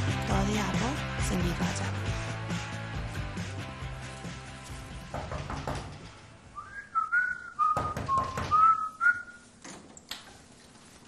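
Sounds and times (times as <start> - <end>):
soft knocks: 5.1 - 6.1
person whistling: 6.6 - 9.4.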